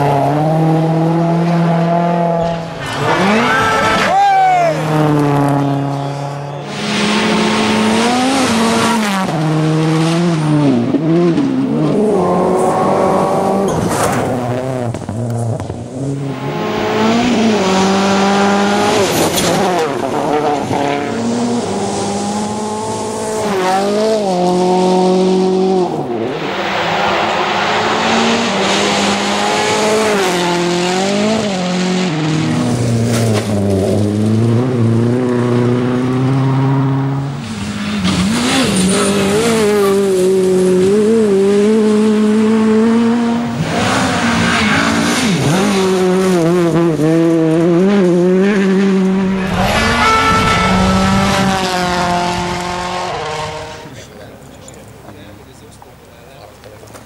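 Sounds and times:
rally cars revving past: 0.0s - 55.0s.

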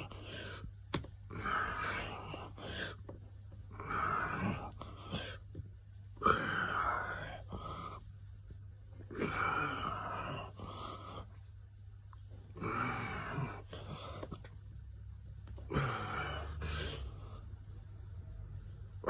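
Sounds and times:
man breathing hard and groaning: 1.3s - 3.0s, 3.7s - 5.5s, 6.2s - 8.1s, 9.1s - 11.4s, 12.5s - 14.5s, 15.6s - 17.6s.

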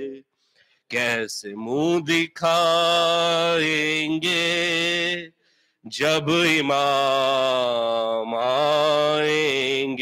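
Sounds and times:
man singing unaccompanied: 0.9s - 10.0s.

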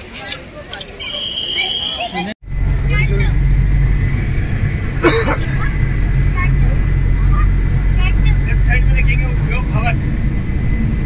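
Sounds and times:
road noise: 0.0s - 11.0s
vehicle engine rumble: 2.2s - 11.0s.

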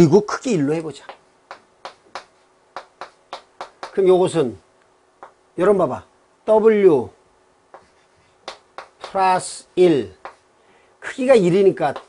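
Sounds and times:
chalk tapping on a chalkboard: 1.0s - 4.1s, 5.2s - 5.4s, 7.7s - 9.5s, 10.2s - 10.5s, 11.8s - 12.0s.

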